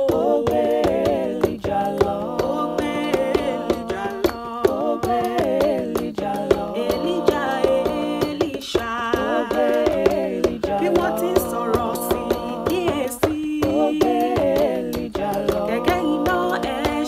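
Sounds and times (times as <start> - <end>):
woman singing a cappella harmony: 0.0 - 17.0.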